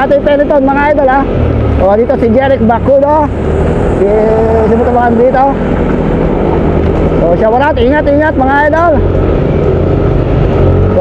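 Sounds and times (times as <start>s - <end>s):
man talking: 0.0s - 5.6s, 7.2s - 9.1s.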